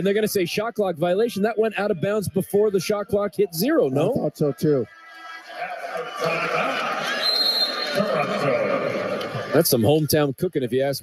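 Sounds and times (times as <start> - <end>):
arena crowd hubbub: 0.0 - 11.0.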